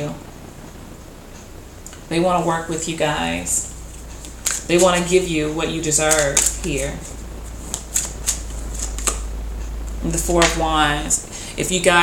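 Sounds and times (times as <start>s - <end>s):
cards being shuffled: 3.7s - 9.3s.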